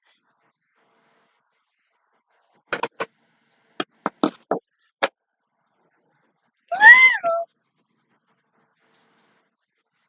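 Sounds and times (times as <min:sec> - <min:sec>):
cat meowing: 0:06.7 - 0:07.5.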